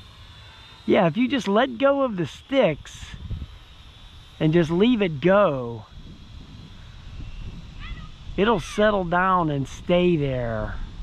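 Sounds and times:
wind noise on microphone: 2.8 - 11.0.

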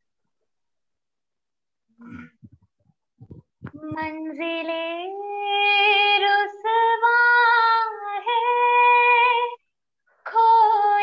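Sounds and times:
woman singing unaccompanied: 3.7 - 9.6, 10.3 - 11.0.

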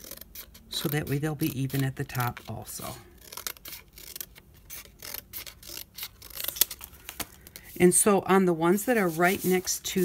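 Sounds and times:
scissors snipping cardboard: 0.0 - 6.8.

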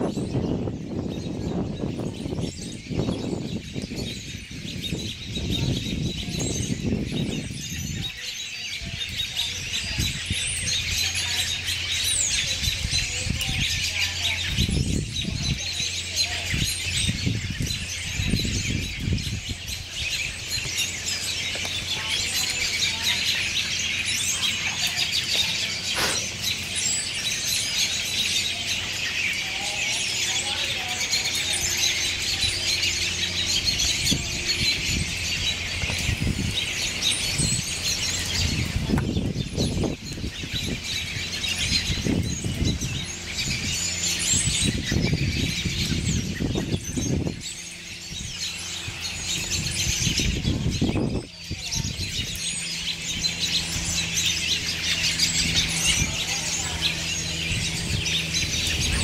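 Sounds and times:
flock of birds chirping: 0.0 - 59.0.

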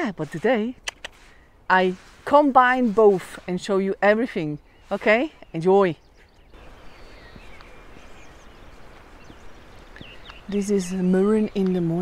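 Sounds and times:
faint bird chirps: 4.4 - 11.9.

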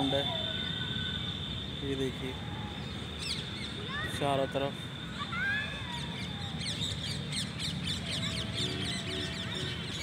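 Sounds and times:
birds chirping: 2.7 - 4.4, 5.1 - 10.0.

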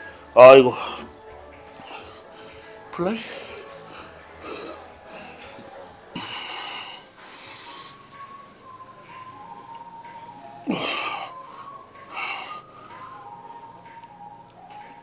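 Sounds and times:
forceful breaths: 0.0 - 8.4, 10.1 - 14.0.

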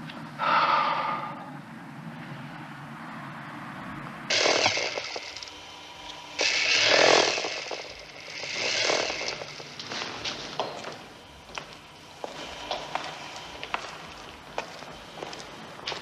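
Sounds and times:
low steady hum: 0.0 - 16.0
motor-driven machine running: 4.3 - 16.0.

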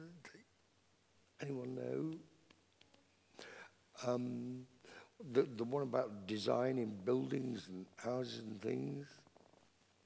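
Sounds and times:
man talking: 0.0 - 0.4, 1.4 - 2.3, 4.0 - 9.2.

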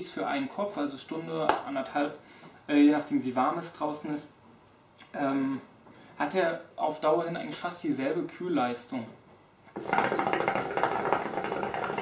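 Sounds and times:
hookah water bubbling: 9.8 - 12.0.

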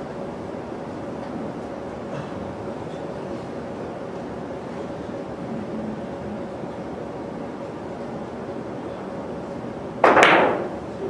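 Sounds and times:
billiard balls clicking: 10.0 - 10.8
billiard cue hit: 10.0 - 10.8.

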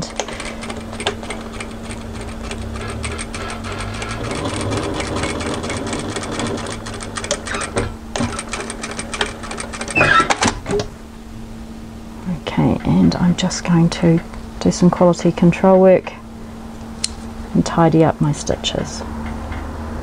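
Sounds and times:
sewing machine stitching: 0.0 - 10.6.

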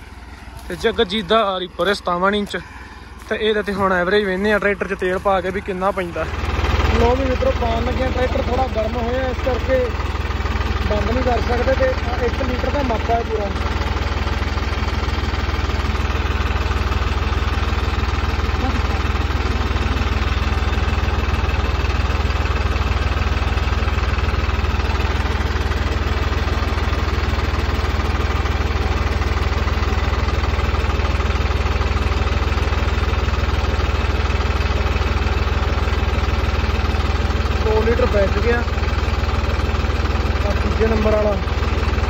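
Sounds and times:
diesel tractor engine idling: 0.0 - 42.0.

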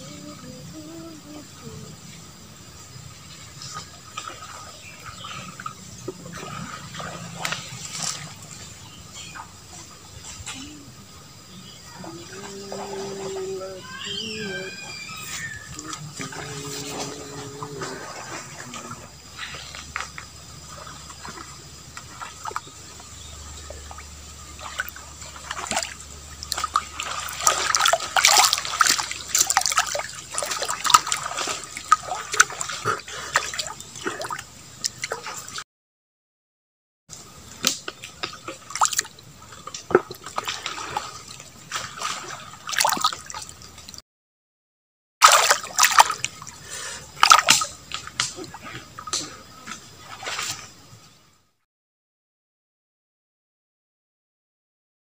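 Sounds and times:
fish splashing in shallow water: 2.3 - 35.6, 37.1 - 44.0, 45.2 - 51.0.

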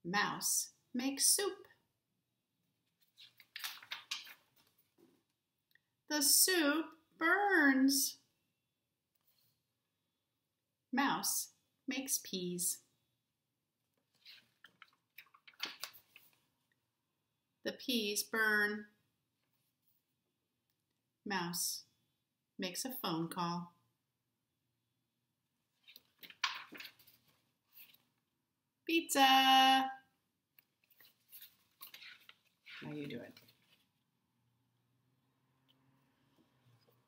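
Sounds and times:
paper pages rustling: 2.9 - 5.1, 14.0 - 16.6, 25.8 - 28.2, 30.8 - 34.0.

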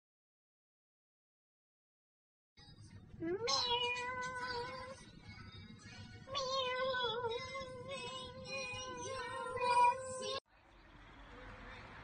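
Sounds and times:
woman imitating cat meow: 3.2 - 4.9.

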